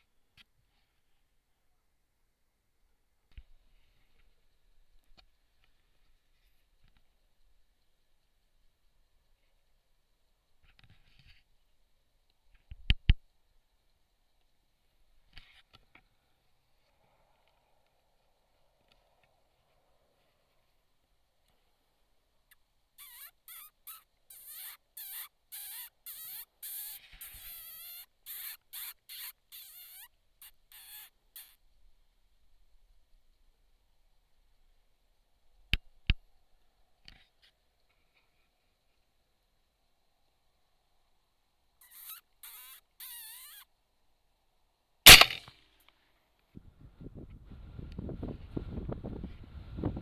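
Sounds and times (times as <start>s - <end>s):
predator call squeals: 23.0s - 31.6s, 41.8s - 43.7s
rifle shot: 45.1s - 45.5s.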